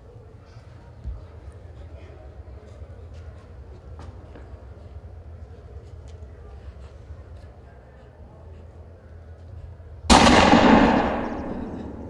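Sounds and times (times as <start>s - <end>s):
gunshot with echo: 10.1s - 12.0s.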